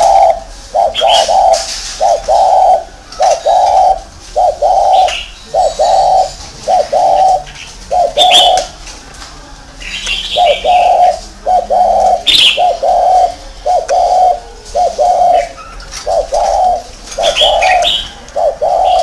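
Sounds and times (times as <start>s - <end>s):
dove cooing: 0.0s - 8.8s, 9.8s - 19.0s
small birds chirping: 0.0s - 9.0s, 9.6s - 19.0s.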